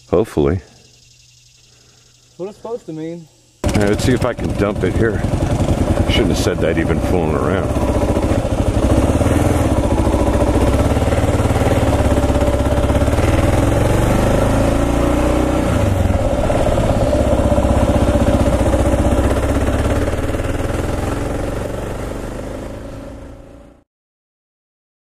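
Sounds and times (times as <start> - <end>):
motorcycle engine running: 3.6 - 23.8.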